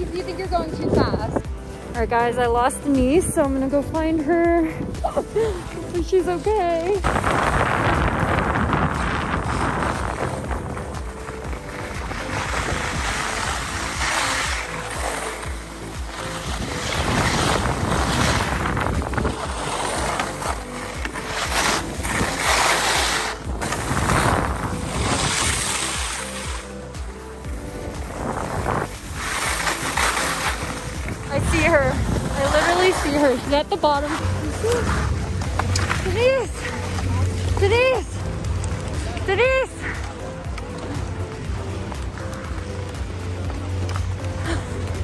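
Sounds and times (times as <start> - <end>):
wind rushing over microphone: 0.0 - 2.2, 6.9 - 14.6, 15.8 - 20.6, 21.6 - 26.4, 27.5 - 39.0
background music: 0.0 - 45.0
skis scraping on packed snow: 0.0 - 45.0.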